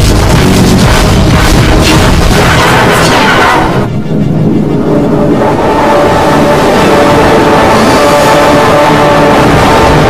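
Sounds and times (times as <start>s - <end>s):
distorted overlapping logo music: 0.0s - 3.1s.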